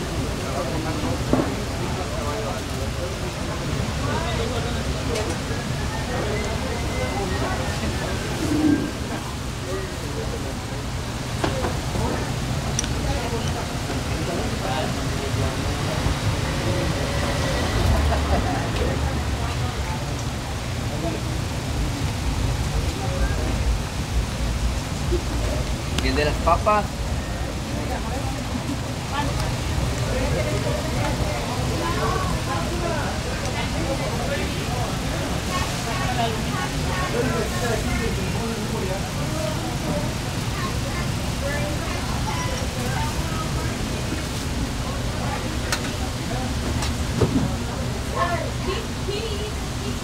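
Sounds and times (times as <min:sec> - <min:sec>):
faint background voices: 0:00.0 - 0:50.0
people talking: 0:00.0 - 0:50.0.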